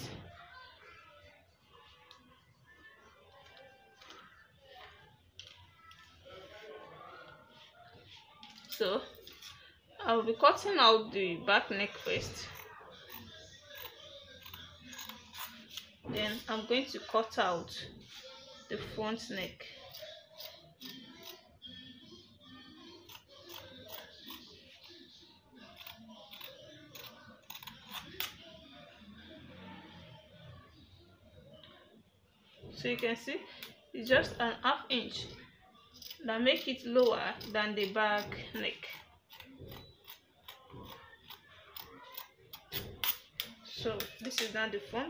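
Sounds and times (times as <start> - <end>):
faint music: 0.0 - 45.0
scissors cutting fabric: 12.0 - 15.9, 23.0 - 24.5, 25.7 - 28.4.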